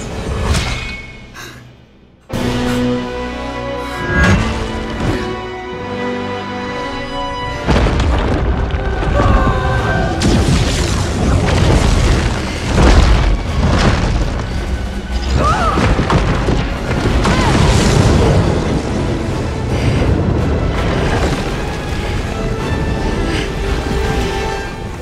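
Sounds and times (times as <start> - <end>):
film music score: 0.0 - 25.0
energy blasts and heavy booms: 7.5 - 25.0.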